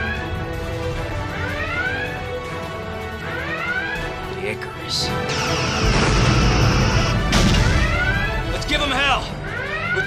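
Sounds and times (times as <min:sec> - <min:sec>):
orchestral film score: 0:00.0 - 0:10.0.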